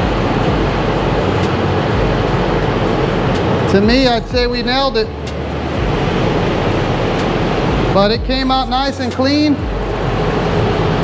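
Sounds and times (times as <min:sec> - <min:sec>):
spray booth ventilation fan rushing: 0:00.0 - 0:11.0.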